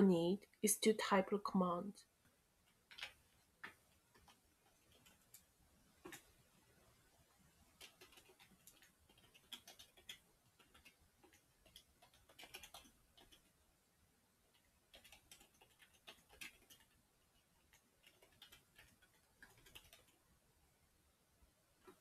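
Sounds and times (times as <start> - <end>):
computer keyboard typing: 2.6 - 6.3, 7.7 - 13.6, 14.5 - 20.2.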